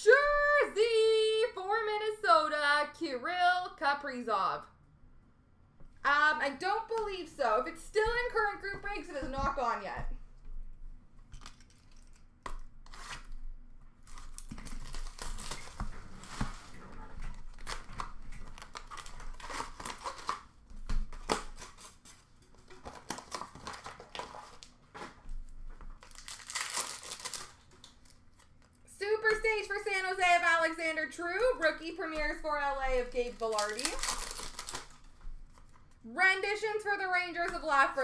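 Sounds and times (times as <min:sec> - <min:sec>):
wrappers torn and crinkled: 0:11.3 - 0:13.4, 0:14.0 - 0:25.2, 0:25.9 - 0:28.8, 0:33.1 - 0:36.0.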